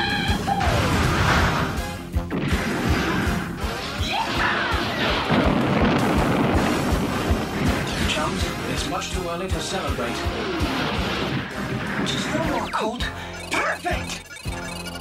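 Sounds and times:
dramatic background music: 0.0s - 15.0s
explosion: 0.6s - 3.6s, 4.3s - 9.0s, 10.0s - 12.7s
cartoon laser fire: 12.0s - 15.0s.

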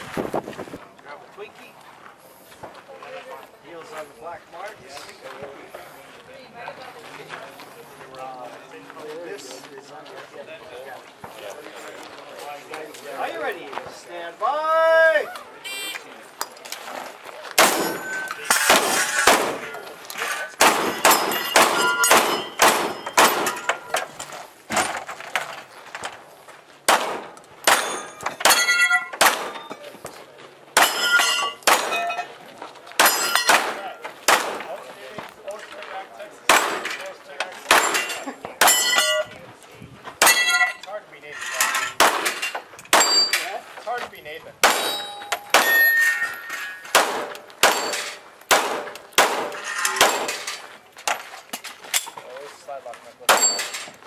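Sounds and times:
gunshots: 17.6s - 19.8s, 20.6s - 23.9s, 26.9s - 29.7s, 30.8s - 32.1s, 33.0s - 34.8s, 36.5s - 37.0s, 37.7s - 39.1s, 42.0s - 43.3s, 44.6s - 45.9s, 46.9s - 50.5s, 53.3s - 53.8s
steel targets ringing: 17.6s - 19.8s, 20.6s - 24.1s, 27.7s - 29.8s, 30.8s - 32.3s, 33.0s - 33.8s, 37.7s - 39.3s, 40.2s - 40.8s, 41.4s - 43.5s, 44.6s - 48.2s, 53.3s - 53.9s.

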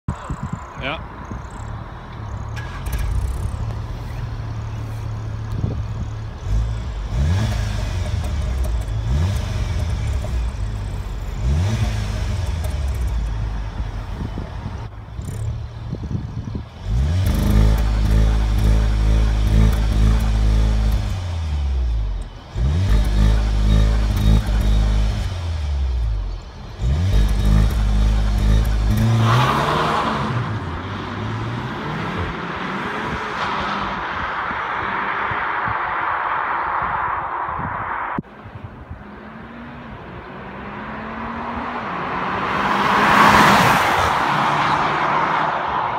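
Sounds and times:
car engine revving: 2.2s - 45.9s.

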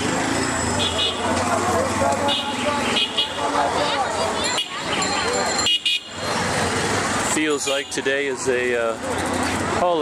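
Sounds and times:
traffic noise: 0.0s - 10.0s
voices chattering: 0.0s - 10.0s.

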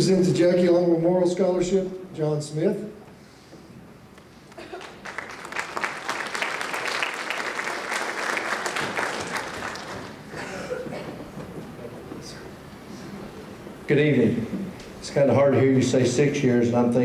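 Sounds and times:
audience applauding: 4.5s - 11.4s.

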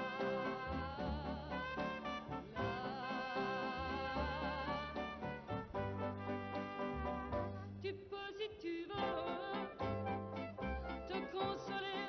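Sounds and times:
woman singing with vibrato: 0.0s - 5.4s, 7.8s - 10.2s, 10.8s - 12.0s
band accompaniment: 0.0s - 7.8s, 9.0s - 12.0s.

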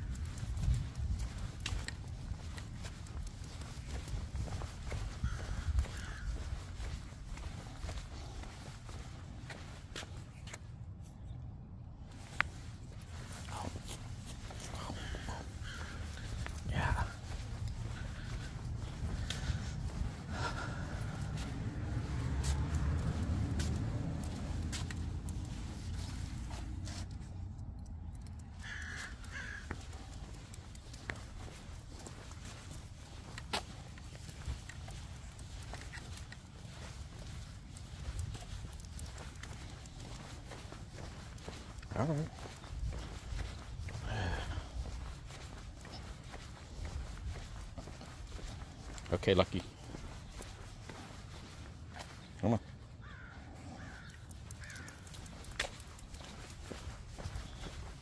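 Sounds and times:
footsteps walking: 0.0s - 11.1s, 12.1s - 58.0s.

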